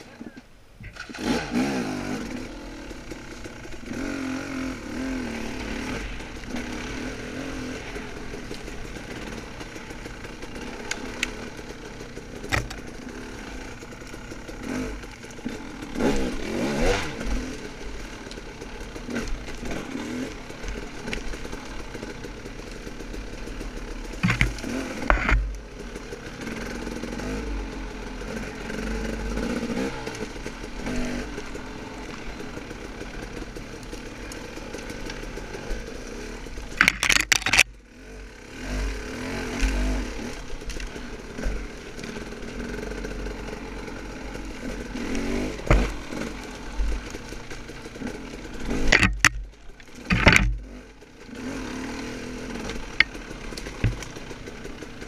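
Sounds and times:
dirt bike engine revving: 0.8 - 55.0
bike knocking on rough ground: 12.3 - 13.0, 24.1 - 25.7, 36.5 - 37.7, 45.1 - 46.2, 48.4 - 50.8, 52.7 - 54.8.

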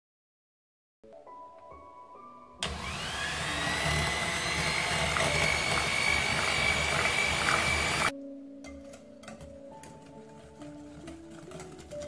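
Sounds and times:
electric hand mixer whine: 2.6 - 8.1.

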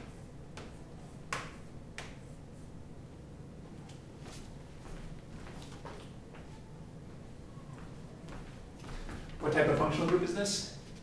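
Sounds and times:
chalk clicking on chalkboard: 0.0 - 2.4.

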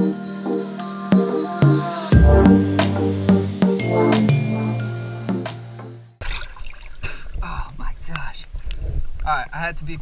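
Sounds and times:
water sloshing and splashing: 6.2 - 7.4.

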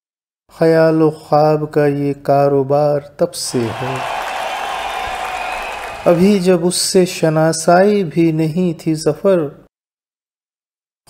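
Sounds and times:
audience applauding: 3.5 - 6.6.

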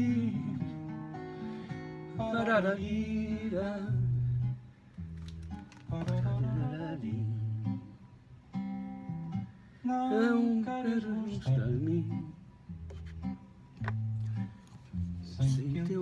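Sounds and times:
plucked guitars: 0.0 - 9.6, 10.6 - 16.0.

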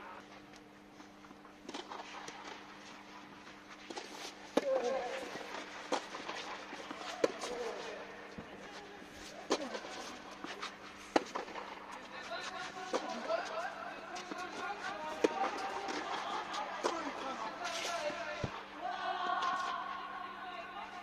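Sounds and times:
steady low hum: 0.0 - 21.0
racket hitting tennis ball: 9.5 - 11.8.

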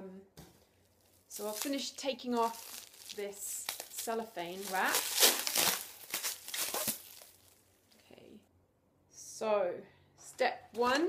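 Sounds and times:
cellophane crinkling: 0.9 - 7.7.

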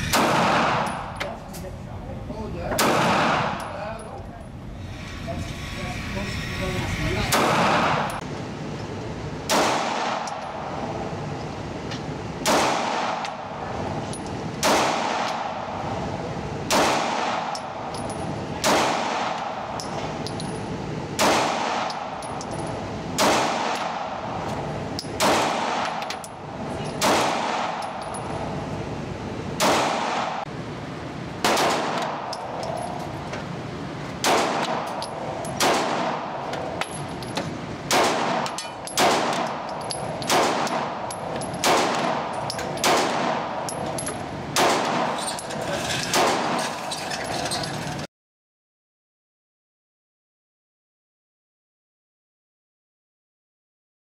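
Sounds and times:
pistol shots echoing indoors: 0.0 - 1.1, 16.7 - 17.6, 21.2 - 22.2, 23.2 - 24.2, 27.0 - 28.0, 29.6 - 30.5, 31.4 - 32.3, 34.2 - 34.9, 35.6 - 36.3, 37.9 - 39.7, 40.3 - 41.0, 41.6 - 43.6.

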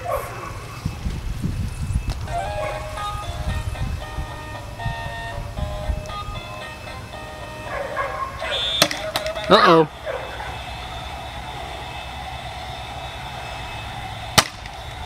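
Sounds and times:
electronic beeping tune: 8.4 - 14.0.

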